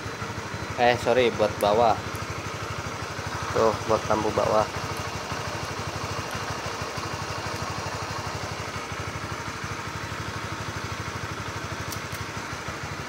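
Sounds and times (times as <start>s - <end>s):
motorcycle engine idling: 0.0s - 13.0s.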